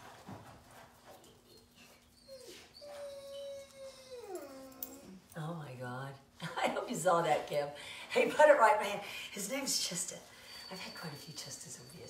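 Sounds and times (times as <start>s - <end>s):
dog whining: 1.4s - 5.3s.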